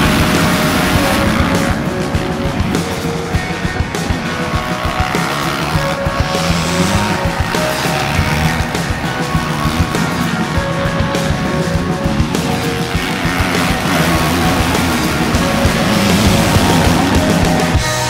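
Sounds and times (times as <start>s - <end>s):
loud rock music: 0.0s - 18.0s
motorcycle engines revving: 0.0s - 18.0s.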